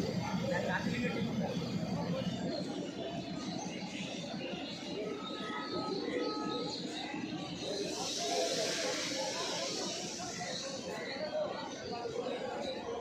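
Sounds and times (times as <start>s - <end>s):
murmur of voices: 0.0s - 13.0s
high hissing rush: 7.6s - 11.4s.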